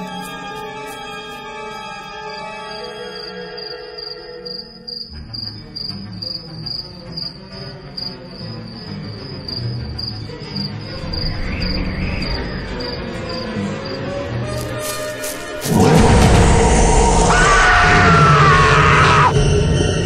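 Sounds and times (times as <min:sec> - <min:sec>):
crickets chirping: 0:00.0 - 0:20.0
low rumbling music drone: 0:05.2 - 0:20.0.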